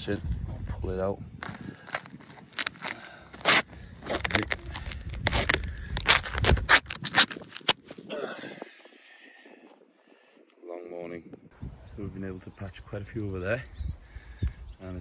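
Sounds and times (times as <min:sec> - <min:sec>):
plastic wrap crackling: 0:01.4 - 0:08.1.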